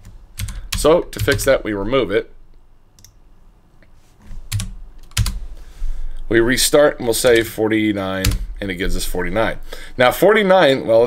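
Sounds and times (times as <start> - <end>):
low steady hum: 0.0 - 11.0
keyboard key presses: 4.5 - 5.4.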